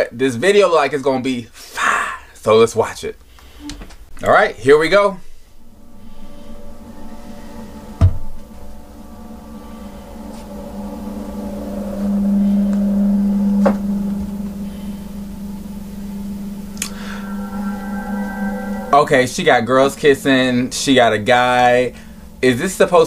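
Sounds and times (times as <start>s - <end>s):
low held drone: 5.2s - 23.0s
higher held tones: 5.3s - 22.9s.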